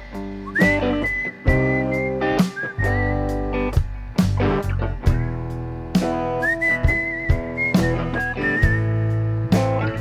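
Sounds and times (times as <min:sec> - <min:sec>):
guitar and drums backing music: 0:00.0 - 0:10.0
person whistling a melody: 0:00.4 - 0:03.4, 0:06.3 - 0:09.2.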